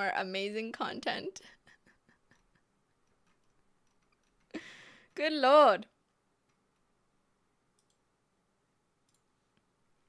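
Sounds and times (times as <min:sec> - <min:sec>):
computer mouse click: 0:07.7 - 0:08.0.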